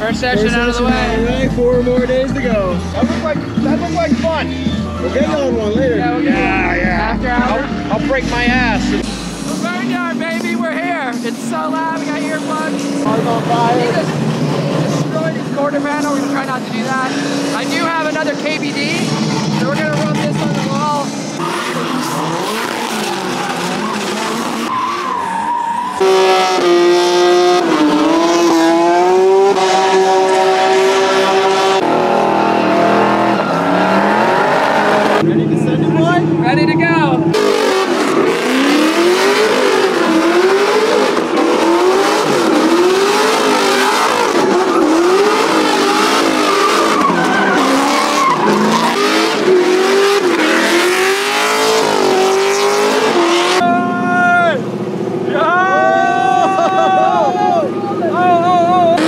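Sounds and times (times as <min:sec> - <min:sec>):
car engines revving hard: 0:00.0 - 0:59.0
tyre squeal: 0:43.5 - 0:49.4.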